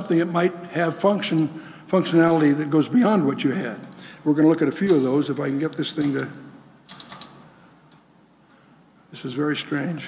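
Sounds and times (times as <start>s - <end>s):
laptop keys clicking: 6.9s - 7.4s.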